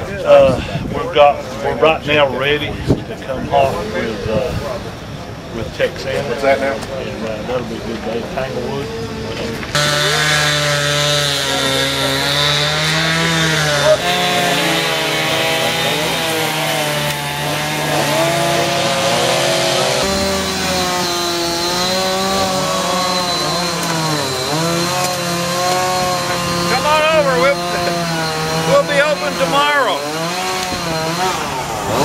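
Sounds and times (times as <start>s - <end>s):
chainsaw running: 9.7s - 32.0s.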